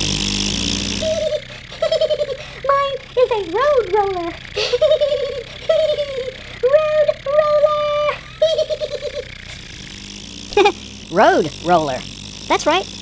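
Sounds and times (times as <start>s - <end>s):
puppet voice laughing: 1.0s - 9.5s, 10.5s - 10.8s.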